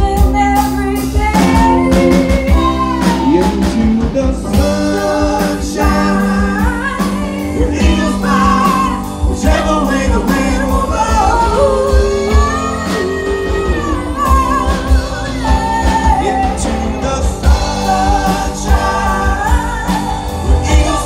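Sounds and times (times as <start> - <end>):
live rock band playing: 0.0 - 21.0
woman singing: 0.0 - 21.0.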